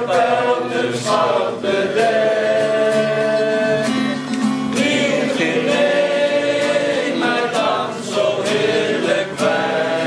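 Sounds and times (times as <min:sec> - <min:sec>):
acoustic guitar: 0:00.0 - 0:10.0
voices singing together: 0:00.0 - 0:10.0.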